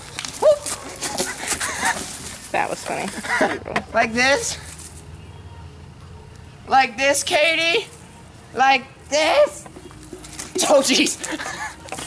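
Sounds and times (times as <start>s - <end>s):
voices: 0.4s - 12.0s
people laughing: 3.2s - 3.9s, 10.6s - 12.0s
person yelping: 9.1s - 9.6s.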